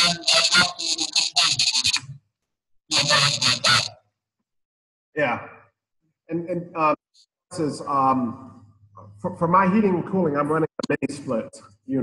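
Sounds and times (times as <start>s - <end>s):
unclear voice over video call: 5.2s - 12.0s.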